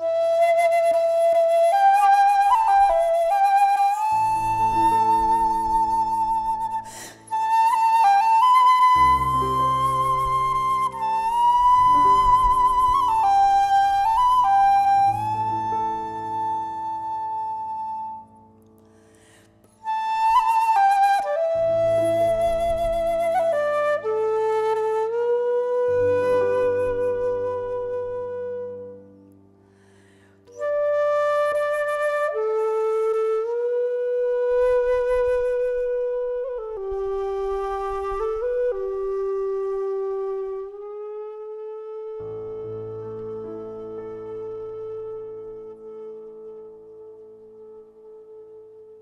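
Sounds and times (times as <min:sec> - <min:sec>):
wooden flute playing slow tune: 0:00.0 - 0:49.0.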